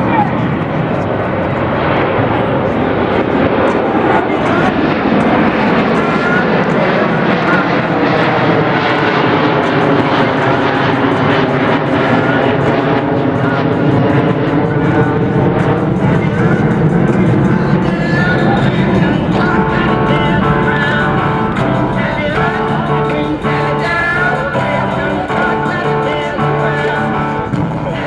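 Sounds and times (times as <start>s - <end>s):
people talking: 0.0s - 8.7s, 16.0s - 28.0s
aircraft engine overhead: 0.0s - 28.0s.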